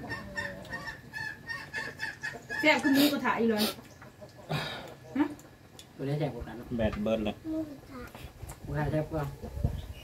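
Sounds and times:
fowl high-pitched calls: 0.0 - 4.5.

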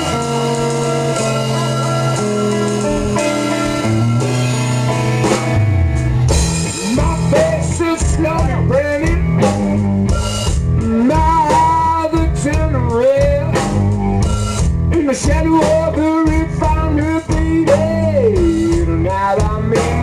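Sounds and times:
blues band playing: 0.0 - 20.0
lead guitar bending notes: 0.0 - 20.0.

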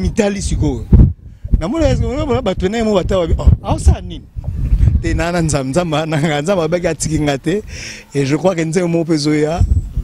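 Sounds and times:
man speaking into a microphone: 0.0 - 4.3, 4.9 - 9.8.

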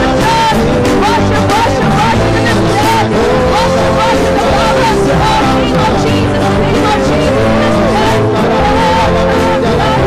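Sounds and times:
guitars playing sustained chords: 0.0 - 10.0
woman singing: 0.0 - 10.0.

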